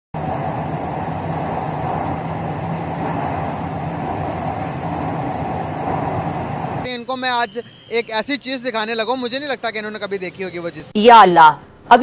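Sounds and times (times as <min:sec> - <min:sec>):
low hum: 0:00.2 - 0:07.1
train rushing through tunnel: 0:00.2 - 0:10.5.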